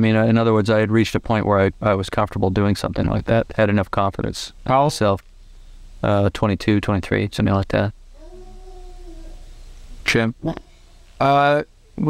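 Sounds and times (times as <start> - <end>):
steady background hiss: 0.0 - 12.0
faint animal call: 8.1 - 9.8.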